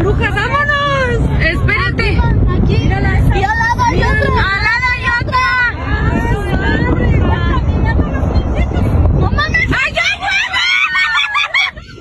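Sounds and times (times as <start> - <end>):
people talking: 0.0 - 11.8
steady low rumble: 0.0 - 12.0.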